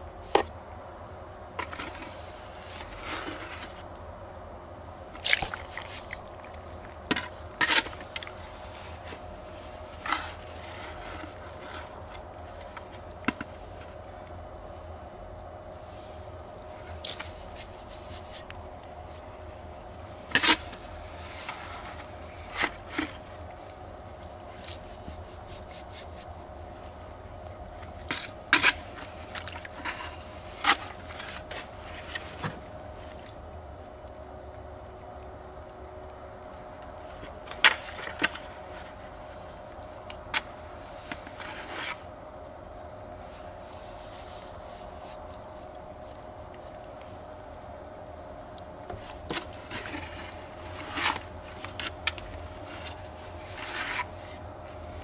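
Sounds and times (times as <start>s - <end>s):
steady low hum: 0.0s - 55.0s
plastic scoops scraping a bucket: 1.6s - 3.8s, 5.3s - 6.2s, 9.9s - 13.5s, 28.0s - 32.6s, 40.0s - 42.1s, 48.9s - 55.0s.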